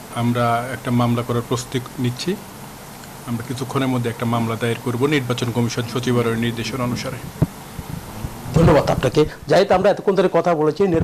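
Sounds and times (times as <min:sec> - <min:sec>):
man talking: 0:00.1 - 0:02.4, 0:03.2 - 0:07.3, 0:08.5 - 0:11.0.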